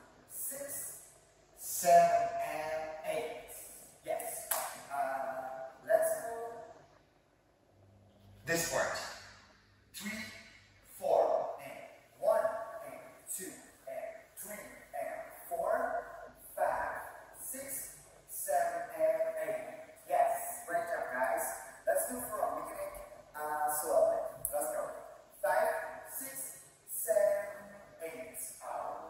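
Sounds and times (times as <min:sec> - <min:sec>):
man making rhythmic syllables: 0:00.0 - 0:06.6, 0:09.9 - 0:29.0.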